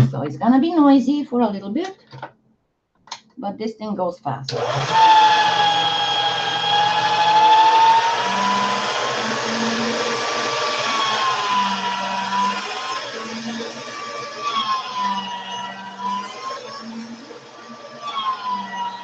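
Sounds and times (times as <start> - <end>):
small electric mixer motor whine: 4.5 - 19.0.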